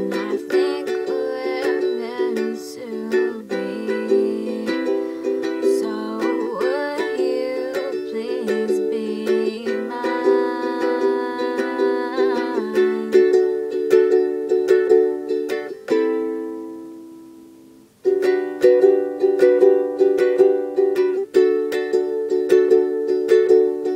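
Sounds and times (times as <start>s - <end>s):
ukulele strumming chords: 0.0s - 23.9s.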